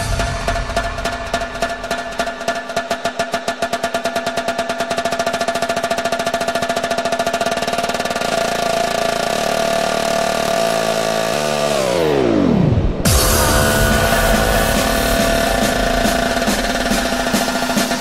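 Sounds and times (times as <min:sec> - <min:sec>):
techno music build-up: 0:00.0 - 0:03.5, 0:11.7 - 0:18.0
rapid repeated hit: 0:00.0 - 0:05.0, 0:12.9 - 0:18.0
downward pitch sweep: 0:12.0 - 0:18.0.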